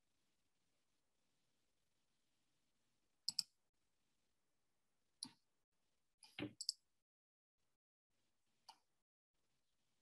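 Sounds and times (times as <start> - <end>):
computer mouse clicks: 3.2 - 3.6, 5.2 - 5.4, 6.2 - 6.8.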